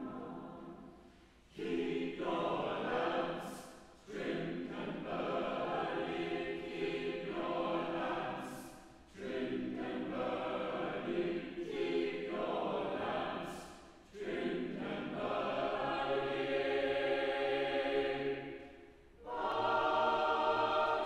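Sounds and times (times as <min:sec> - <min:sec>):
choir breaths: 0:00.0 - 0:21.0
choir singing a carol: 0:00.0 - 0:21.0.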